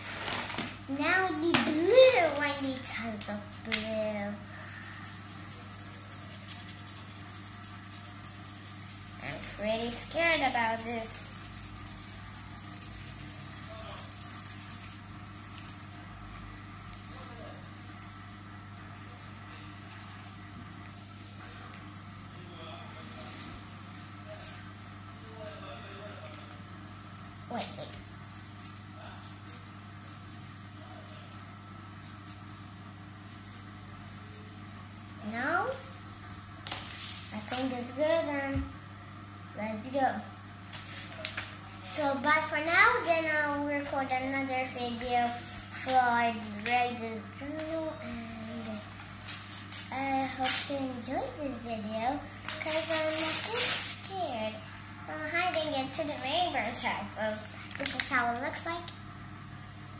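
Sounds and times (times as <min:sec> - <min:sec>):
low room hum: 0:00.0 - 0:59.9
marker scribbling on paper: 0:04.7 - 0:16.0.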